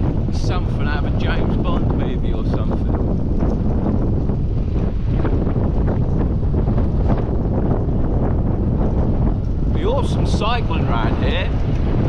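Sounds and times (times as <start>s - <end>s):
road noise: 0.0s - 12.0s
wind buffeting microphone: 0.0s - 12.0s.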